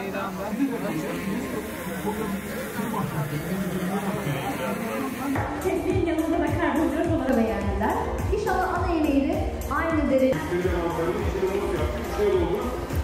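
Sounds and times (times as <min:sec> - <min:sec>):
indistinct chatter: 0:00.0 - 0:07.3, 0:10.2 - 0:13.0.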